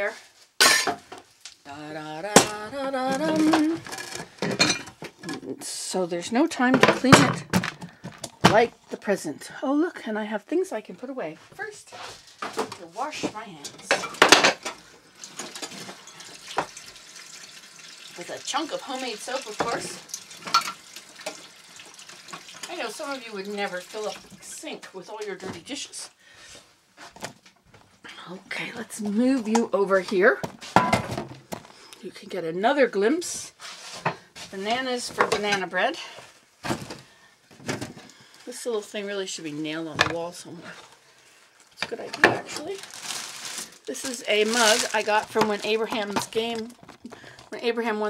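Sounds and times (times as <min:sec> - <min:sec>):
woman's wordless voice: 0:00.0 - 0:00.3, 0:01.6 - 0:04.0, 0:05.3 - 0:07.6, 0:08.4 - 0:14.2, 0:18.2 - 0:20.0, 0:22.7 - 0:26.2, 0:28.0 - 0:30.5, 0:32.0 - 0:33.6, 0:34.4 - 0:36.3, 0:38.5 - 0:40.9, 0:41.8 - 0:42.9, 0:43.8 - 0:48.0
dishes clattering: 0:00.6 - 0:01.2, 0:02.4 - 0:05.4, 0:13.6 - 0:16.8, 0:19.6 - 0:21.4, 0:30.7 - 0:31.5, 0:35.1 - 0:35.7.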